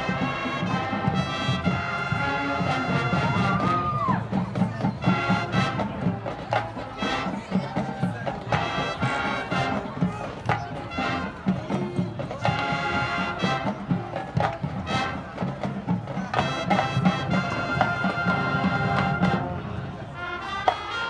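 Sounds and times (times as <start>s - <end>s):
brass chords: 0.0s - 4.0s, 5.0s - 7.5s, 8.5s - 10.1s, 10.7s - 21.0s
drums and percussion strikes: 0.0s - 19.6s.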